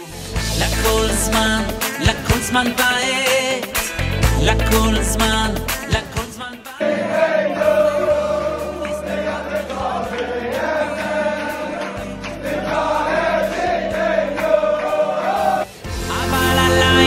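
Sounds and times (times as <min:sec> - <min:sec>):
acoustic guitar: 0:00.0 - 0:06.7
group of men singing: 0:00.4 - 0:17.0.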